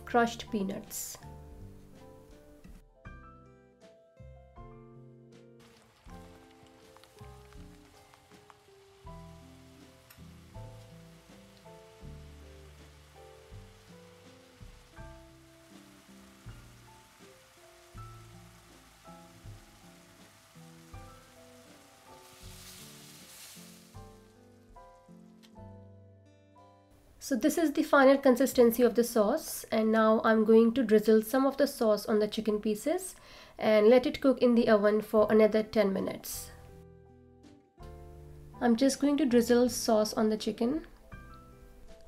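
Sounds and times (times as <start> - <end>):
soft instrumental music: 0.0 - 27.4, 35.2 - 42.0
sauce sizzling in a wok: 5.6 - 25.3.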